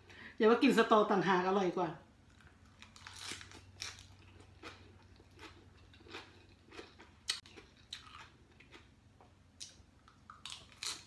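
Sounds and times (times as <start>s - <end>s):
person chewing crunchy cabbage: 2.2s - 11.0s.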